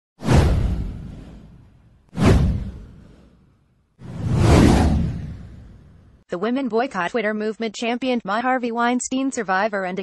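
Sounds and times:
whoosh: 0:00.2 - 0:06.2.

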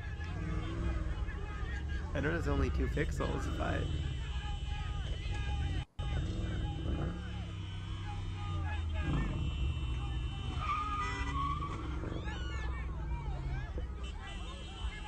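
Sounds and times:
car engines revving: 0:00.0 - 0:15.0
excited voices: 0:00.0 - 0:15.0
tyres squealing on asphalt: 0:00.0 - 0:15.0.

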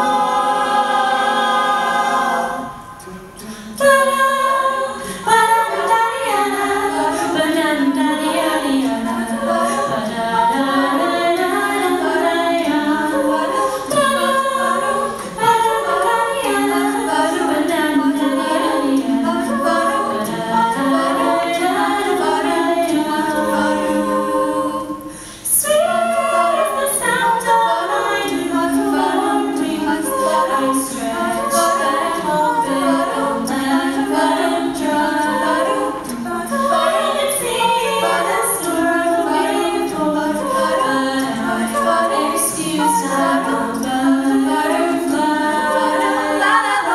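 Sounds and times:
a cappella group singing in harmony: 0:00.0 - 0:46.9.

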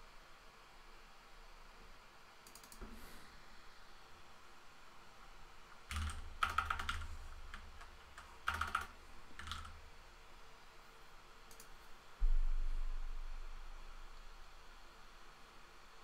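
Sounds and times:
typing on computer keyboard: 0:02.4 - 0:02.9, 0:05.9 - 0:09.8, 0:11.5 - 0:11.7.

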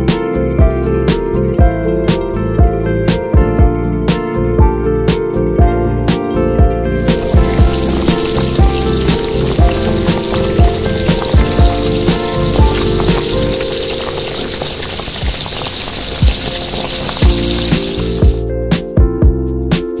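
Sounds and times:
food deep-frying in oil: 0:07.0 - 0:18.4
music with drum beat: 0:07.0 - 0:20.0.

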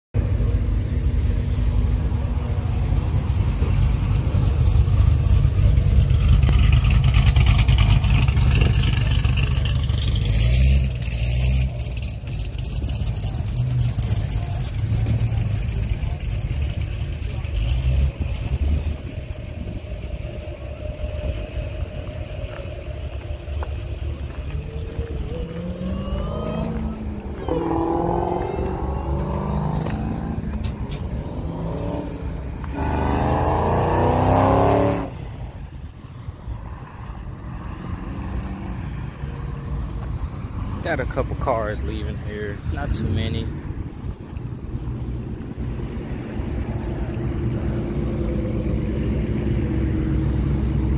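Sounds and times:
car engine rumbling past: 0:00.2 - 0:50.9
car engines accelerating: 0:00.2 - 0:50.9.

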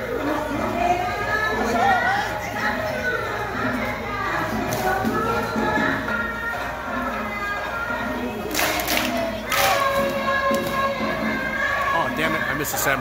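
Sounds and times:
crowd noise: 0:00.0 - 0:13.0
festival dance music with singing: 0:00.0 - 0:13.0.

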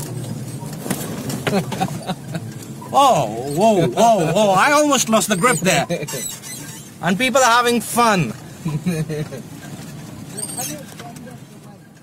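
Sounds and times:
jeep engine running: 0:00.0 - 0:12.0
man laughing: 0:01.5 - 0:02.5, 0:03.6 - 0:04.7, 0:08.7 - 0:09.4.

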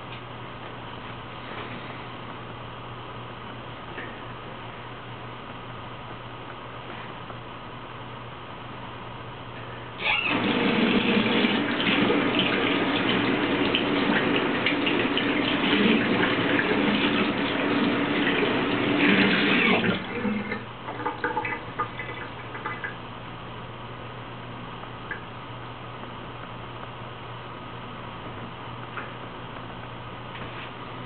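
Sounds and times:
tap running into a sink: 0:11.0 - 0:23.0.

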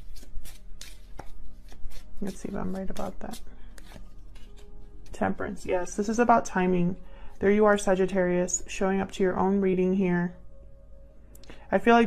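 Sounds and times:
cards being shuffled: 0:00.0 - 0:05.4.

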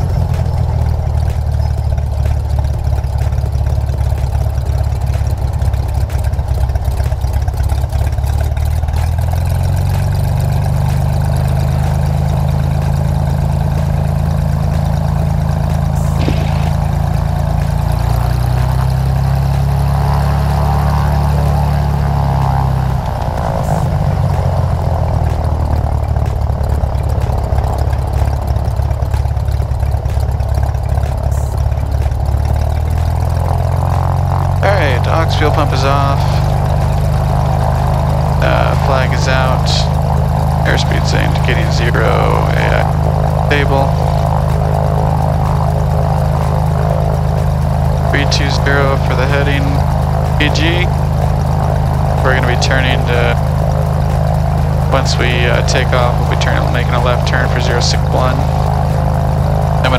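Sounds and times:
propeller airplane engine running: 0:00.0 - 0:59.9.

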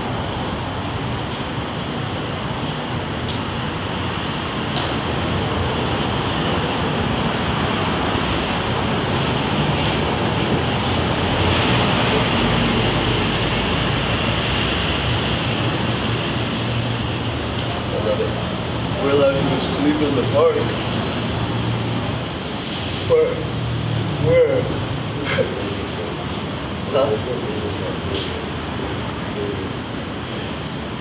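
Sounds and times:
city street traffic: 0:00.0 - 0:31.0.

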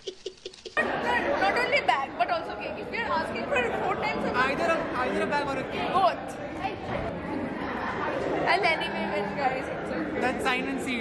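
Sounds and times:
overlapping chatter in a hall: 0:00.8 - 0:11.0.

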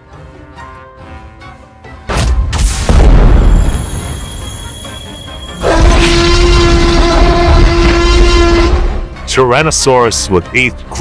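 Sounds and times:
loud horn-like tone: 0:04.0 - 0:09.0.

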